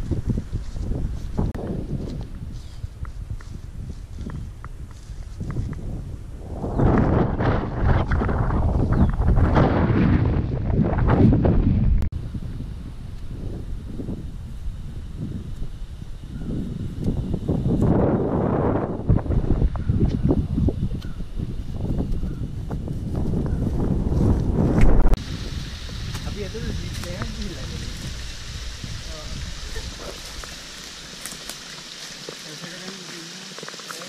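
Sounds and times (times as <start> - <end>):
wind buffeting microphone: 0.0 - 32.2.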